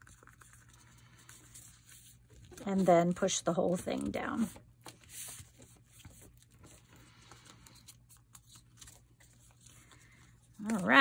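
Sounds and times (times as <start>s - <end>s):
paper envelope rustling: 0.0s - 11.0s.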